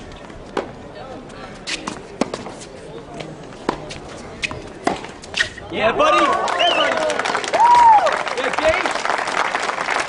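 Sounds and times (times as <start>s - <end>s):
faint crowd voices: 0.0s - 7.4s.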